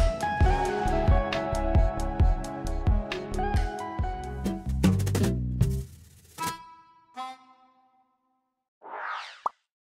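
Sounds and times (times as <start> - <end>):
background music held notes: 0.0 - 7.8.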